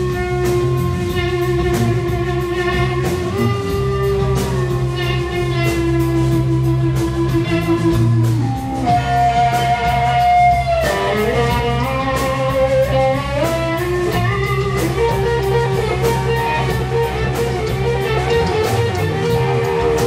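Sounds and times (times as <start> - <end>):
bass guitar line: 0.0 - 20.0
drums with cymbal strokes: 0.0 - 20.0
electric guitar lead: 0.0 - 20.0.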